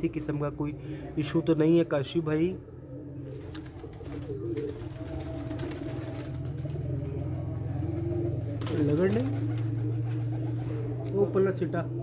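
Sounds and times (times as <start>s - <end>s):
pigeons cooing: 0.0s - 12.0s
steady low hum: 0.0s - 12.0s.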